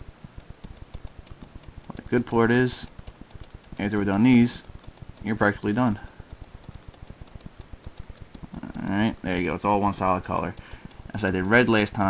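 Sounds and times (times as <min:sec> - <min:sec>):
computer mouse clicking: 0:00.0 - 0:12.0.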